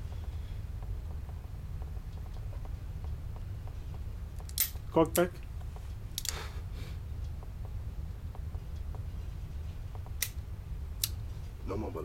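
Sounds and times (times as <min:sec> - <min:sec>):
low hum: 0:00.0 - 0:12.0
handgun action click: 0:06.2 - 0:06.4.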